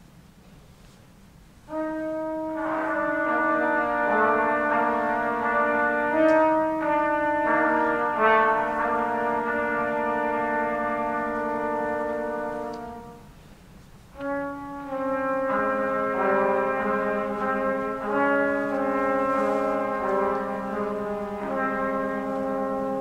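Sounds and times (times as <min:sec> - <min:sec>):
trumpets playing sustained notes: 0:01.7 - 0:13.4, 0:14.1 - 0:23.0.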